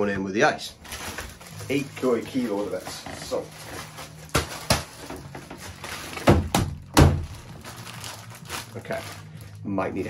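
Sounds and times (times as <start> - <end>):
bag of ice thudding on bath rim: 4.2 - 5.3.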